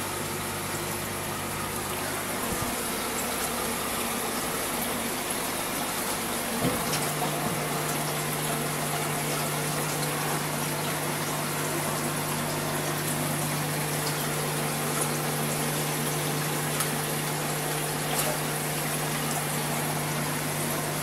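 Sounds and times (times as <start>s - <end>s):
aquarium pump hum: 0.0s - 21.0s
water jet hissing and bubbling: 0.0s - 21.0s.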